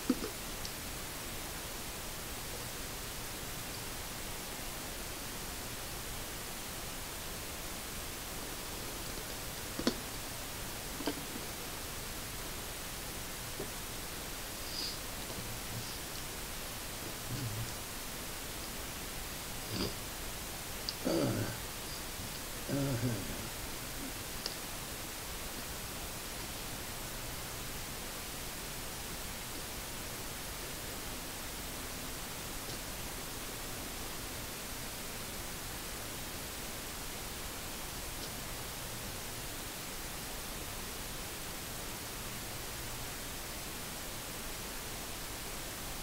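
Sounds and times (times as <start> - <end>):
steady noise floor hiss: 0.0 - 46.0.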